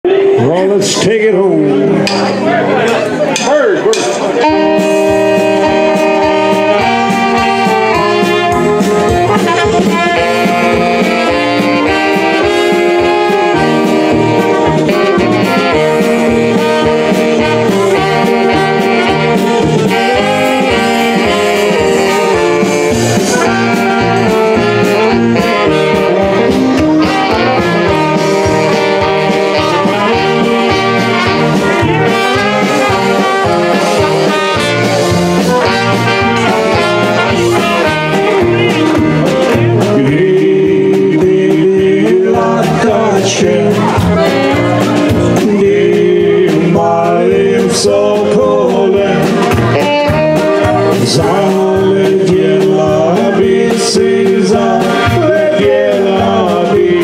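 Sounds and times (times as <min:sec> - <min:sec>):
saxophones: 0:00.0 - 0:03.5, 0:04.4 - 0:57.0
trumpet: 0:00.0 - 0:57.0
electronic drum kit: 0:03.4 - 0:57.0
piano accordions: 0:04.4 - 0:41.8, 0:43.6 - 0:46.6, 0:49.0 - 0:52.6.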